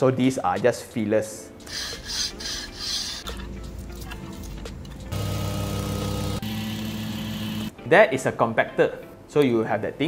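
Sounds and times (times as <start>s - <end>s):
background music: 0.0s - 10.0s
plate compactor engine running: 5.1s - 7.7s.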